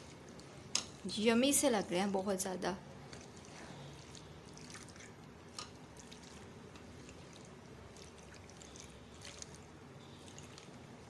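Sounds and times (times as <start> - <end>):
wet squishing of pasta stirred: 0.0 - 11.0.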